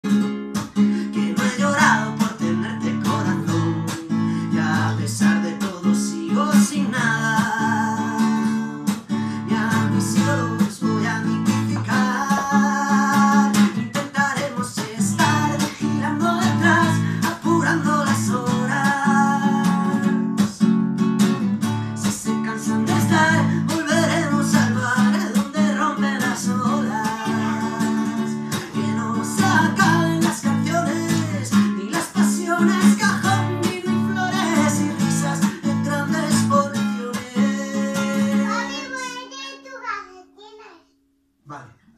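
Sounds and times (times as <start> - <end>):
acoustic guitar strumming: 0.0 - 41.2
man singing: 0.6 - 20.7, 21.8 - 39.2.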